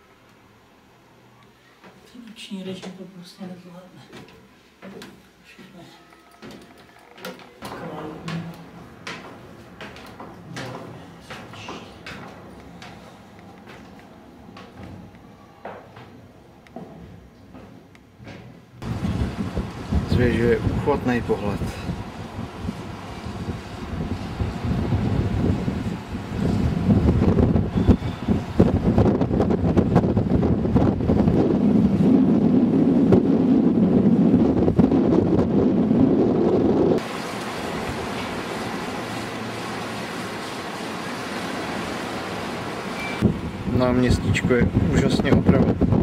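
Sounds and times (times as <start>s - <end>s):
wind buffeting microphone: 18.8s - 37.0s, 43.2s - 46.0s.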